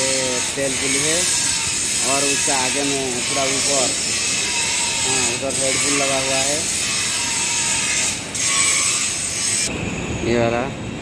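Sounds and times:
loud machinery hiss: 0.0 - 9.7.

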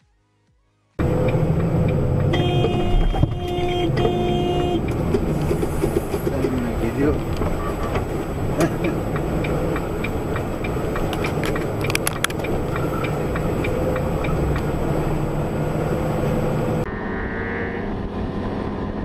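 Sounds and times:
vehicle engine and road noise: 0.8 - 19.0
car horn honking: 2.2 - 5.4.

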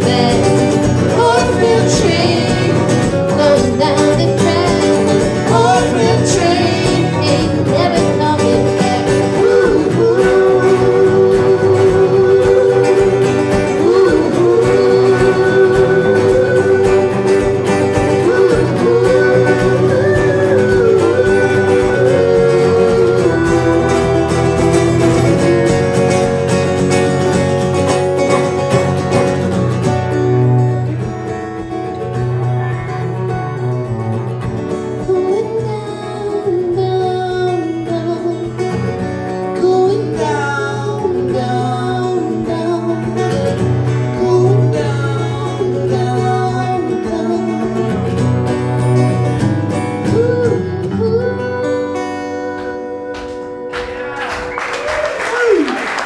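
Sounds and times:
woman singing: 0.0 - 26.0, 34.9 - 48.3, 50.0 - 53.9
man singing: 0.0 - 26.3, 39.5 - 48.2
acoustic guitars: 0.0 - 56.0.

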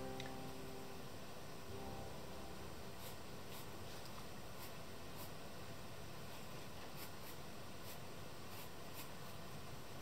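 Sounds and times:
faint steady hiss: 0.0 - 10.0
pen scratching on paper: 3.0 - 3.7, 6.9 - 10.0.

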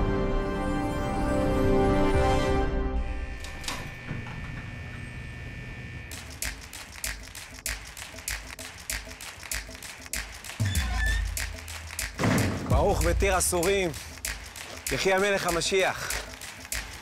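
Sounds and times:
steady ticking clicks: 6.1 - 12.2, 12.8 - 17.0.

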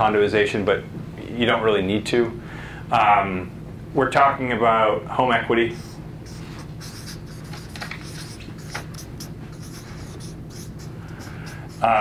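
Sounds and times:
low room hum: 0.0 - 12.0
marker pen writing on paper: 5.8 - 12.0.

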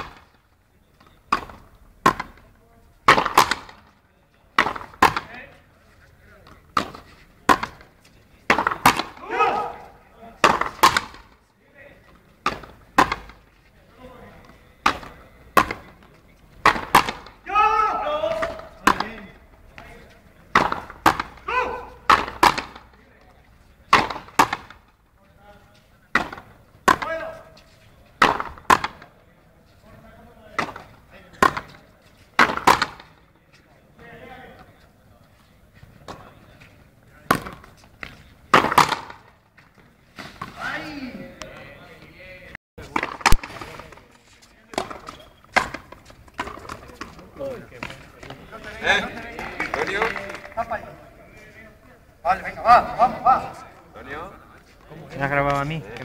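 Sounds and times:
ball hitting wall: 1.3 - 2.4, 3.1 - 3.8, 8.5 - 11.4, 12.4 - 13.4, 16.6 - 17.4, 18.2 - 19.9, 20.5 - 22.9, 23.9 - 24.8, 28.2 - 29.1, 32.4 - 33.2, 38.5 - 39.3
rubber ball cracking off rackets: 3.1 - 3.9, 10.4 - 11.4, 16.6 - 17.4, 20.5 - 23.0, 37.2 - 40.6, 42.8 - 44.1.

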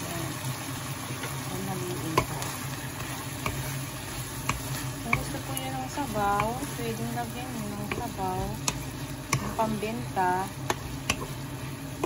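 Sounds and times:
food sizzling in a pan: 0.0 - 12.0
spatula clicking against pan: 4.4 - 6.7, 7.8 - 9.6, 10.6 - 11.3.

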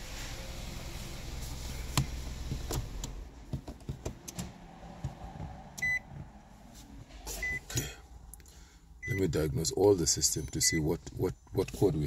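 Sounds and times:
handling clicks and knocks: 2.5 - 4.5.

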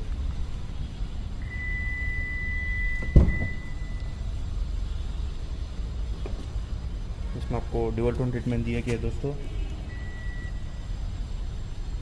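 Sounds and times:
high electronic beep: 1.4 - 4.2, 9.9 - 10.9.

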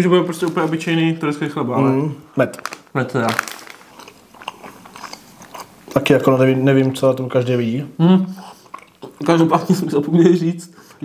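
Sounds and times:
person chewing: 2.6 - 6.1, 8.2 - 9.4.

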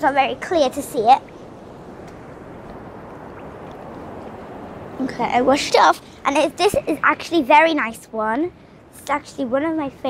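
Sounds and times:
surf breaking on rocky shore: 0.0 - 7.4.

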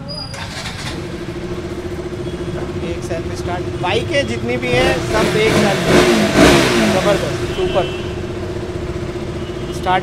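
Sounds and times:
motorcycle engine idling: 0.4 - 10.0.

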